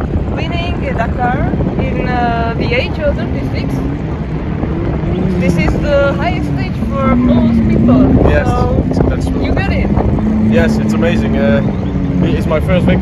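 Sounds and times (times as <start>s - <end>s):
vehicle engine running: 0.0s - 13.0s
wind rumble on microphone: 0.0s - 13.0s.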